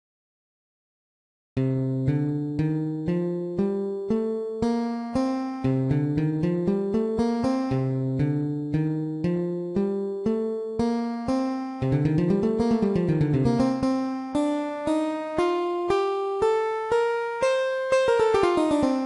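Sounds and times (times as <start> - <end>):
guitar playing a scale: 1.6 - 19.0.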